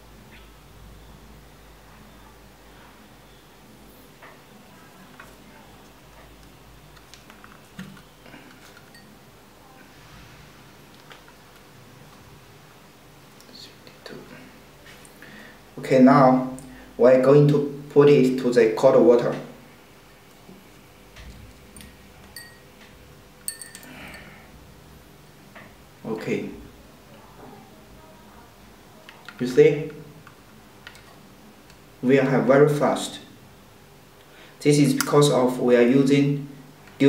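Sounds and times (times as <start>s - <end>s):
metal probes clinking on glass: 8.7s - 9.2s, 21.8s - 22.7s, 23.4s - 24.3s.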